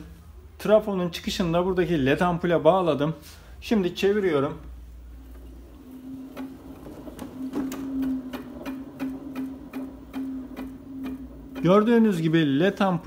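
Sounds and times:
rotor ticking: 0:05.8 - 0:12.1.

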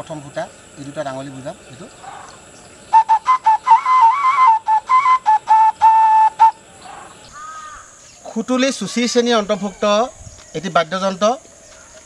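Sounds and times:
clay vessel whistle: 0:02.9 - 0:06.6.

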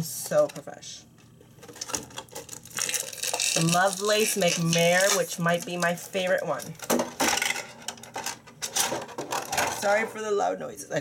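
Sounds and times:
plastic packaging crackling: 0:01.2 - 0:10.0.

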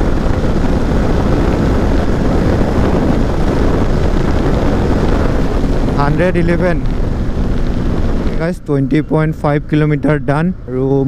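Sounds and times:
motorcycle cruising: 0:00.0 - 0:11.0
wind buffeting microphone: 0:00.0 - 0:11.0.

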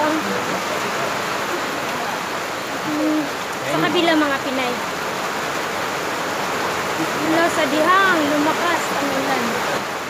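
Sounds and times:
heavy rain pouring: 0:00.0 - 0:10.0.

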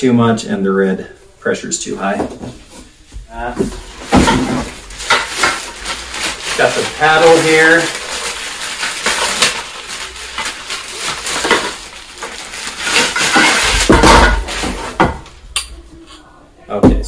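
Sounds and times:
plastic packaging crinkling: 0:03.7 - 0:15.3.

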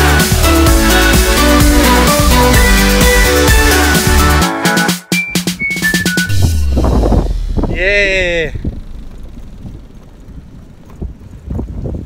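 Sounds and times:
wind buffeting microphone: 0:06.3 - 0:12.0
bicycle rolling on concrete: 0:08.5 - 0:12.0.

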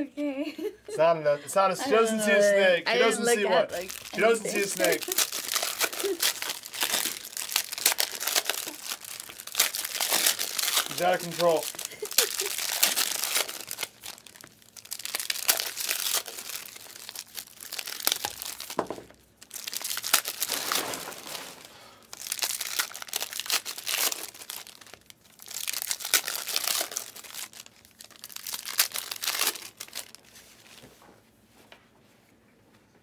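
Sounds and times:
foil wrappers tearing and crinkling: 0:03.3 - 0:30.8.

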